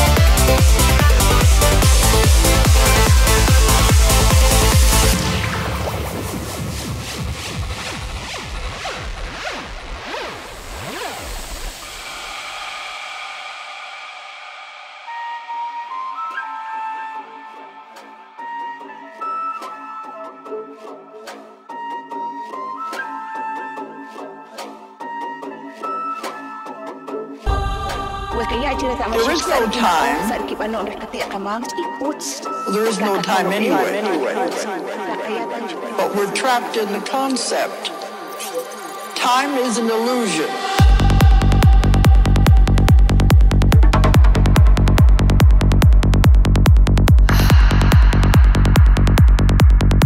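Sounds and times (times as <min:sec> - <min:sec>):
psytrance music: 0:00.0 - 0:50.0
synth lead melody: 0:27.4 - 0:39.2
overlapping spoken voices: 0:28.3 - 0:38.3, 0:39.2 - 0:40.8.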